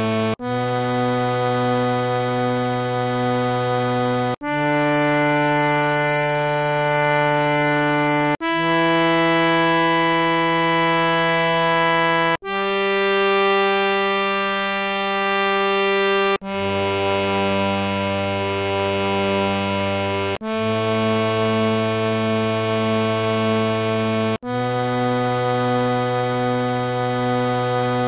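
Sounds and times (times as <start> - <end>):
harmonium playing held notes: 0.0 - 28.0.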